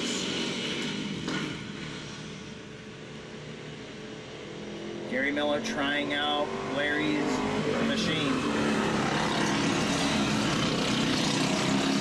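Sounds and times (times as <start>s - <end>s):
go-kart engines racing: 0.0s - 2.7s, 4.3s - 12.0s.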